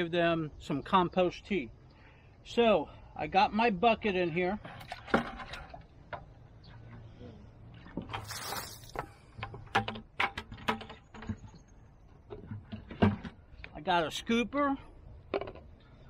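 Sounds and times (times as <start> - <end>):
rustling scrape: 8.1 - 9.0
plastic bucket clicks and knocks: 9.0 - 11.6.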